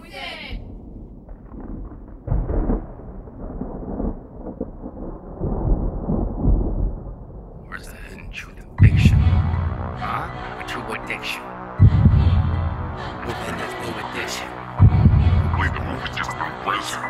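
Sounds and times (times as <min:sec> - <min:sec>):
thunder rumbling: 0:00.5 - 0:17.0.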